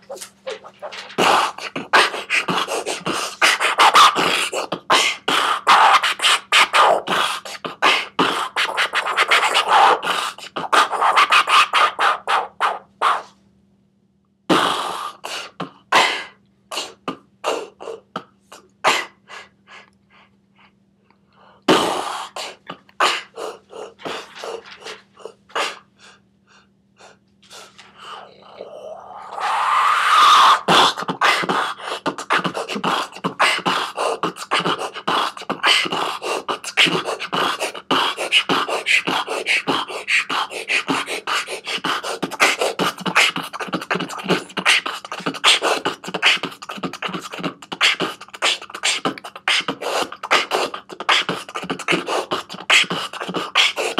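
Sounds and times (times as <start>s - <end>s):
beatboxing into cupped hands: 0.0s - 13.4s, 14.5s - 19.5s, 21.7s - 25.9s, 29.2s - 53.9s.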